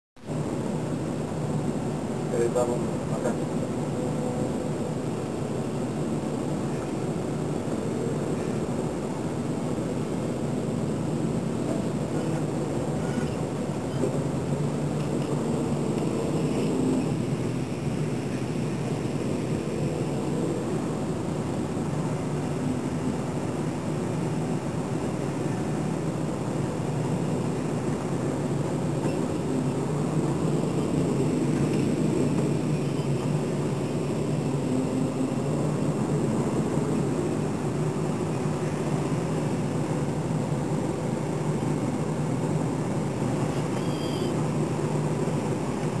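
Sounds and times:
drone of traffic engines: 0:00.2 - 0:46.0.

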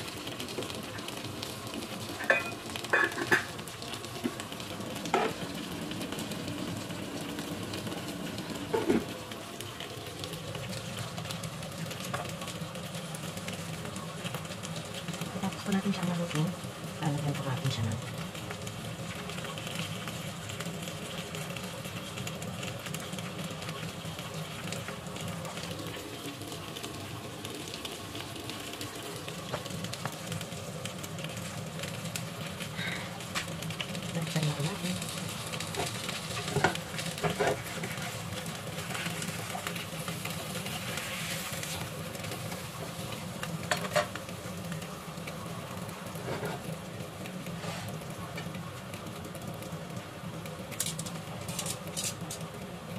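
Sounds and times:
fish sizzling in hot oil: 0:00.0 - 0:52.9.

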